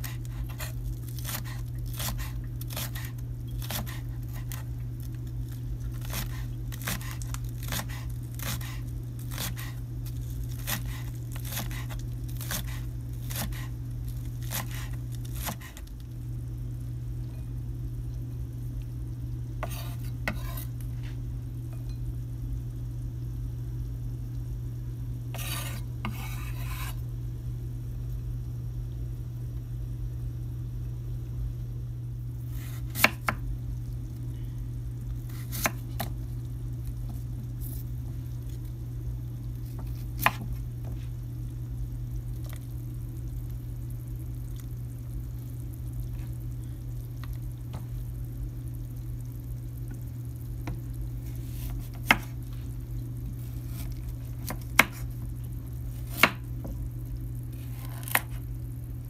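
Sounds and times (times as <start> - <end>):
knife scraping cutting board: 0.0 - 4.6, 6.0 - 9.8, 10.6 - 13.7, 14.4 - 15.8, 19.6 - 21.2, 25.3 - 27.0, 32.5 - 33.4, 35.3 - 36.1, 39.8 - 41.0, 53.4 - 55.1, 57.6 - 58.4
steady low hum: 0.0 - 59.0.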